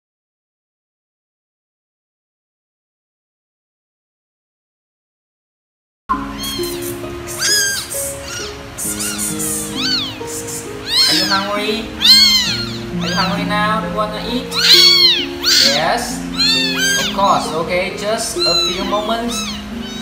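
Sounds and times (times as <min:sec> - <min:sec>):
kittens meowing: 0:06.1 - 0:20.0
soft background music: 0:06.1 - 0:20.0.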